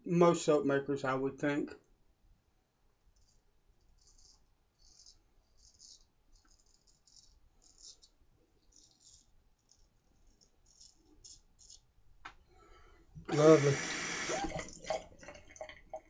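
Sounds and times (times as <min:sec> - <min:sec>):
straight razor scraping stubble: 0:03.2 - 0:11.9.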